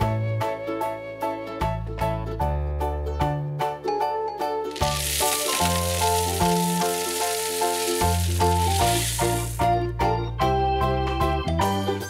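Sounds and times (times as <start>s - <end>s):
bouncy children's music: 0.5s - 12.0s
candies clattering into glass jar: 4.7s - 9.7s.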